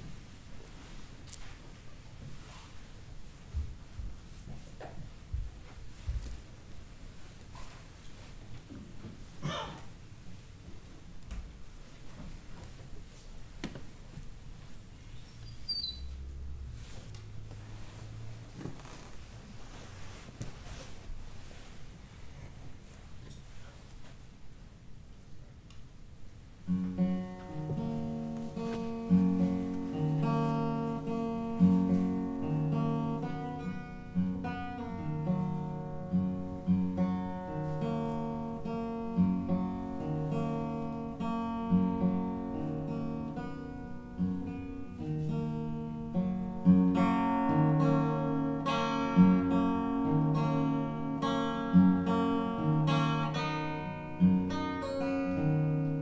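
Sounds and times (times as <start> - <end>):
acoustic guitar plucked chords: 26.7 - 56.0.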